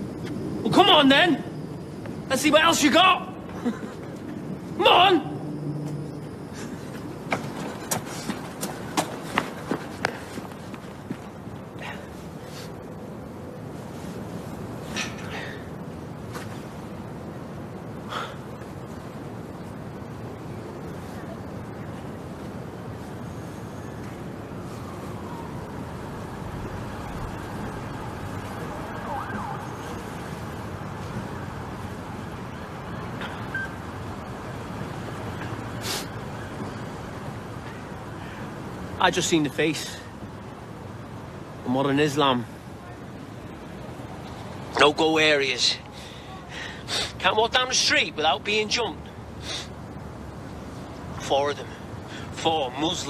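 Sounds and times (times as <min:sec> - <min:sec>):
distant siren: 0:00.0 - 0:03.5, 0:04.2 - 0:12.0, 0:19.0 - 0:39.0
street background noise: 0:00.0 - 0:53.0
hurried footsteps on pavement: 0:06.6 - 0:11.8.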